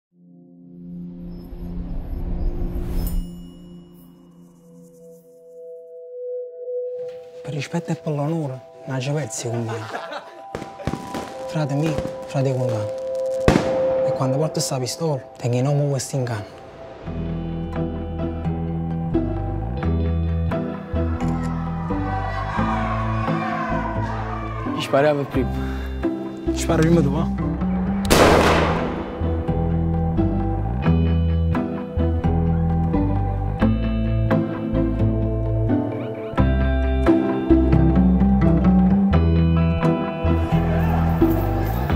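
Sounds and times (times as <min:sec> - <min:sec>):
steady low music: 0:05.0 - 0:41.9
pistol shot: 0:13.5 - 0:14.0, 0:28.1 - 0:29.5.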